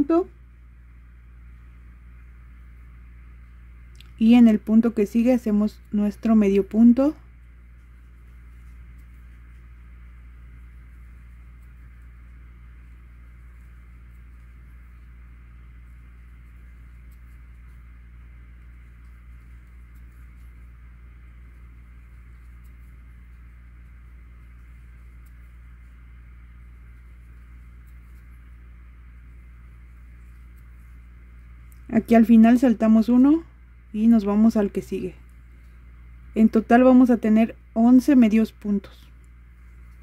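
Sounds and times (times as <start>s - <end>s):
room tone hum and hiss: 0.0s - 40.0s.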